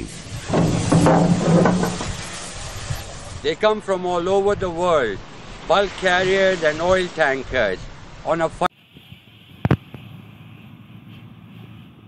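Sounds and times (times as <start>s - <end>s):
steel section groaning and toppling: 0.0s - 4.3s.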